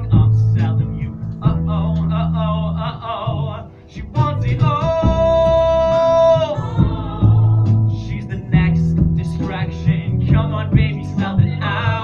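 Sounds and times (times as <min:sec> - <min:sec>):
bass notes: 0:00.0 - 0:12.0
guitar accompaniment: 0:00.0 - 0:12.0
person singing: 0:00.0 - 0:12.0.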